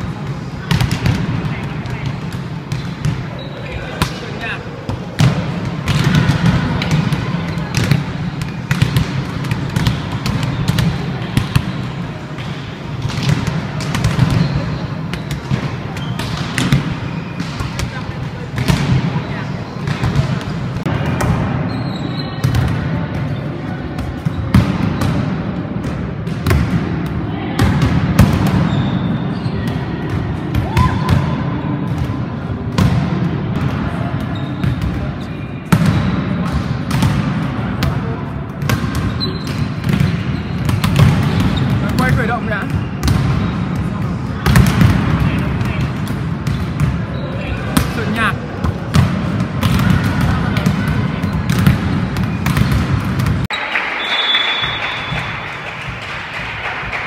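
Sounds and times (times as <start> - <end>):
murmur of voices: 0.0 - 54.0
volleyballs being struck and bouncing: 0.0 - 57.0.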